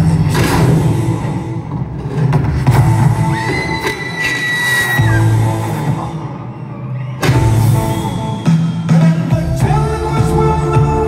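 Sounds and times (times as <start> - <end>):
live rock band playing: 4.8 - 6.6, 7.2 - 11.0.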